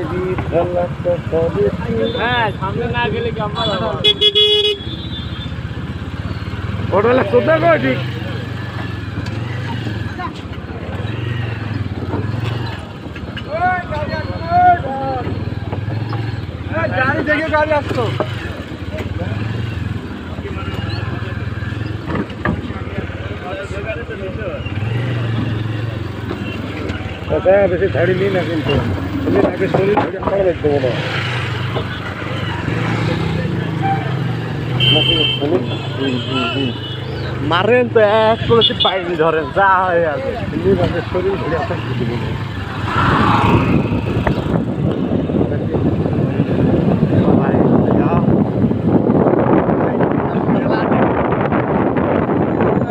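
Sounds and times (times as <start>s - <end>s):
people's voices: 0.0s - 4.6s, 5.7s - 52.9s
wind buffeting on microphone: 42.8s - 52.9s.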